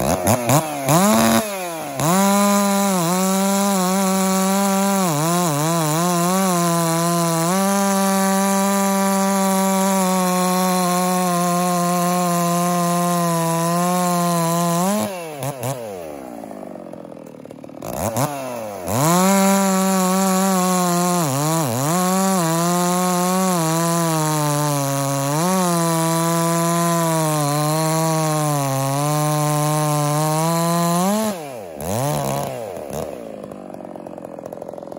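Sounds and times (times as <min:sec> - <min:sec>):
chainsaw cutting through log: 0:00.0 - 0:34.9.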